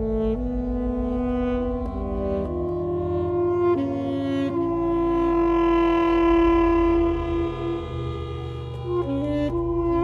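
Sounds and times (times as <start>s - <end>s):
alto saxophone long note: 0.0s - 10.0s.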